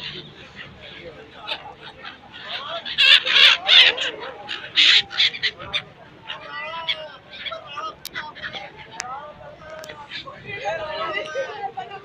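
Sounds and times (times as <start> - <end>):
gulls calling harshly: 0.0 - 12.0
people's voices: 0.0 - 12.0.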